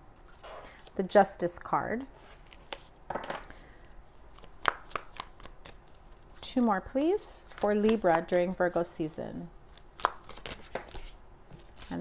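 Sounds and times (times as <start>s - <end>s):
cards rustling: 9.7s - 12.0s.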